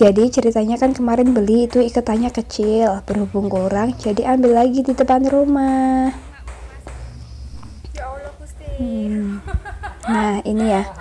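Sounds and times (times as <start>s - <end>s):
woman's voice: 0.0s - 7.0s, 7.8s - 11.0s
low hum: 0.0s - 10.4s.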